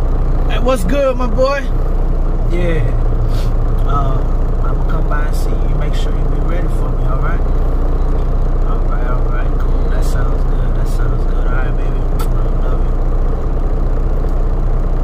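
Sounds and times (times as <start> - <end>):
truck engine drone: 0.0 - 15.0.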